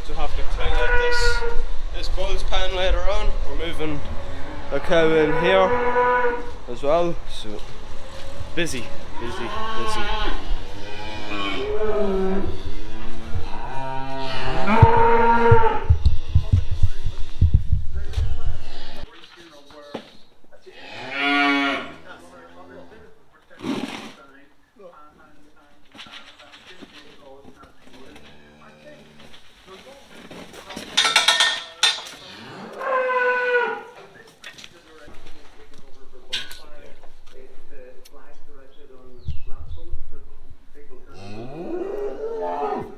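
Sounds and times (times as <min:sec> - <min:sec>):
cattle mooing: 0:00.5 - 0:01.6, 0:04.0 - 0:06.6, 0:09.1 - 0:15.9, 0:20.7 - 0:22.9, 0:32.2 - 0:33.9
low rumble: 0:14.3 - 0:19.0.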